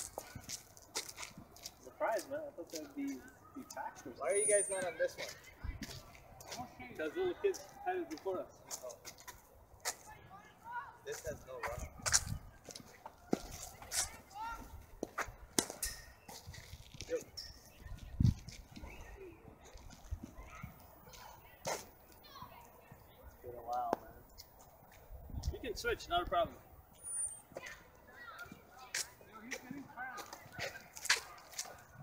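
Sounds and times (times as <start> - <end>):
faint distant voices: 0.0 - 32.0.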